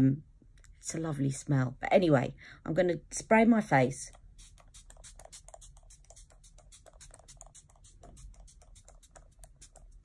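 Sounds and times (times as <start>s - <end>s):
pump mist spray spritzes: 4.4s - 9.9s.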